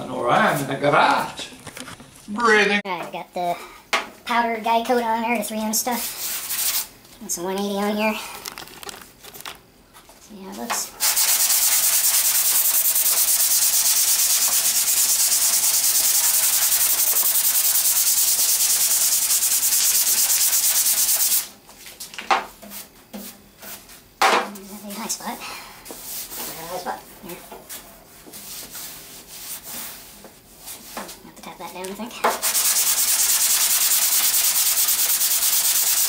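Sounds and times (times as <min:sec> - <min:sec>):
sanding block rasping: 0:11.1 - 0:21.4, 0:32.4 - 0:36.0.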